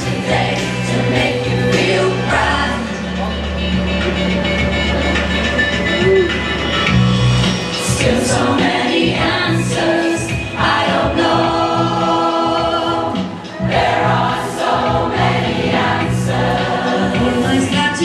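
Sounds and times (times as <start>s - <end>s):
choir singing: 0.0s - 3.4s, 7.8s - 18.0s.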